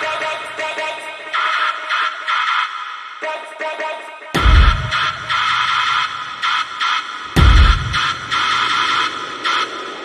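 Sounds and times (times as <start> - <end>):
pulsing high synth riff: 4.4 - 10.0.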